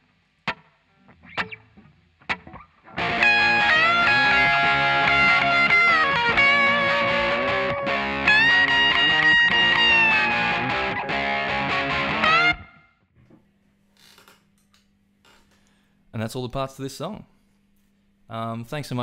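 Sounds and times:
distorted electric guitar lead: 0.4 - 12.9
backing track: 0.5 - 12.8.

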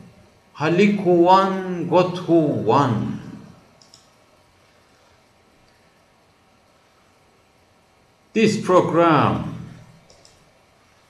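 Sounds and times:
man speaking: 0.6 - 3.6, 8.4 - 9.8.

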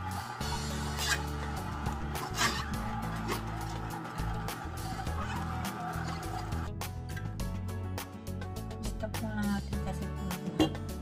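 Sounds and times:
juicer motor humming: 0.0 - 6.7
auger crushing fruit: 0.8 - 3.9.

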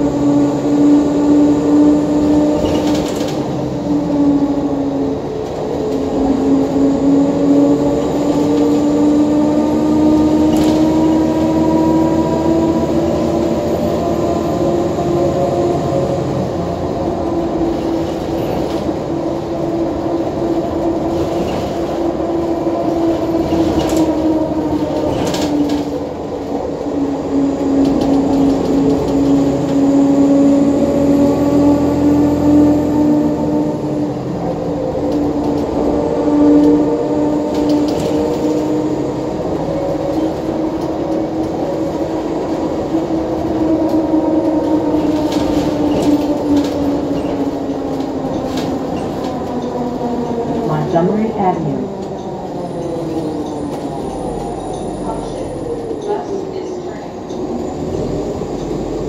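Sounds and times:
diesel engine rumble: 0.0 - 59.0.

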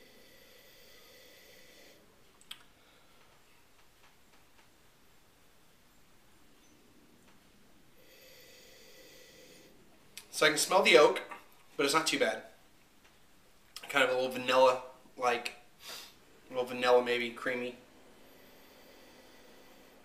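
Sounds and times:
faint click: 2.4 - 4.7
person sniffing: 15.8 - 16.2.

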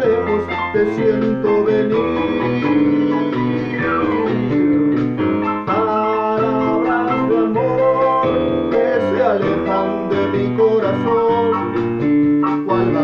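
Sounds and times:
electronic keyboard bossa nova: 0.0 - 13.0.

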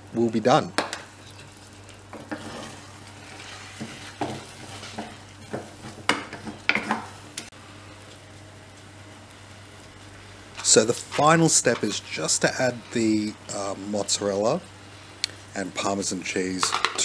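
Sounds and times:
wooden spoon scraping a pot: 1.2 - 7.0.

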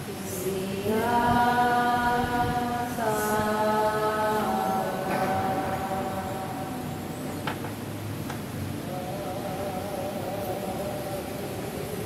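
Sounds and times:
voices chanting in unison: 0.0 - 7.7, 8.7 - 12.0.

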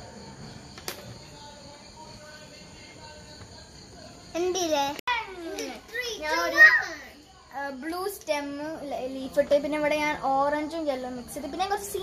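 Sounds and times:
young girl's voice: 4.4 - 12.0.

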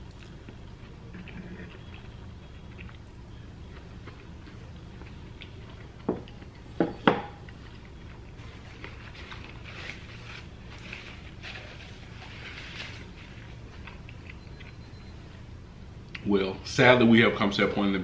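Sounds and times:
paper napkin rustling: 8.3 - 14.0.

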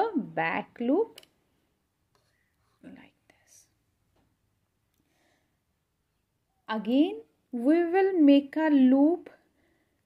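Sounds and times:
faint soft sounds: 1.1 - 6.7.

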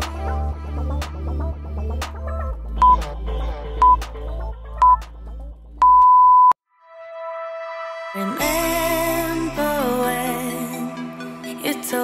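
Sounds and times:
background music: 0.0 - 5.9, 6.8 - 12.0
timer beeps: 2.8 - 3.0, 3.8 - 4.0, 4.8 - 5.0, 5.8 - 6.6.

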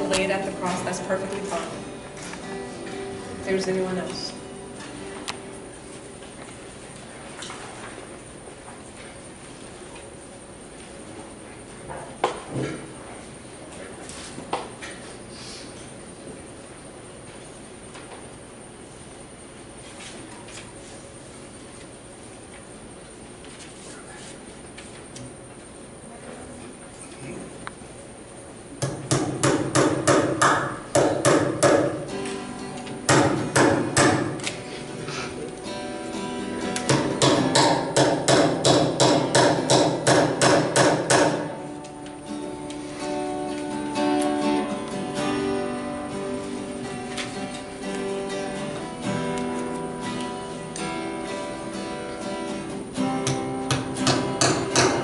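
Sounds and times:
soft acoustic guitar: 0.0 - 9.3, 31.8 - 37.6, 41.5 - 55.0.

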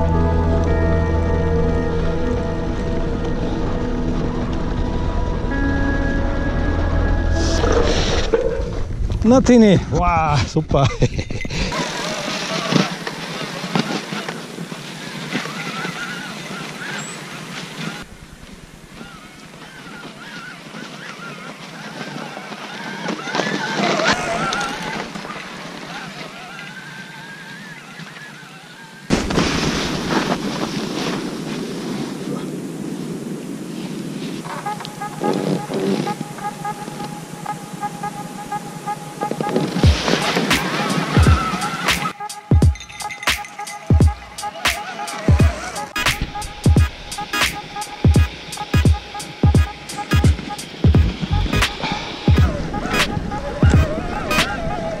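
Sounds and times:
tyres in snow: 0.0 - 55.0
wind rushing: 1.9 - 10.5
faint wavering whine: 29.9 - 44.6
music with a beat: 39.2 - 54.5.

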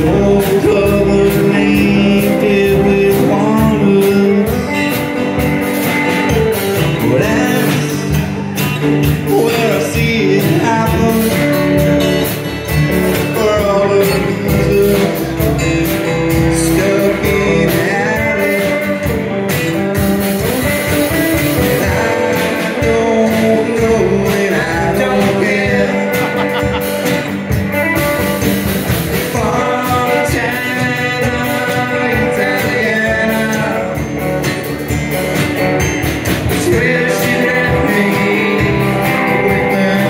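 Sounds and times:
drum kit: 0.0 - 40.0
electric bass: 0.0 - 40.0
electric guitars: 0.0 - 40.0.

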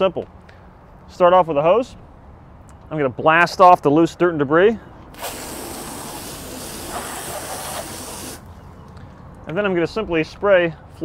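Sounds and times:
hose spraying water: 5.2 - 8.5.

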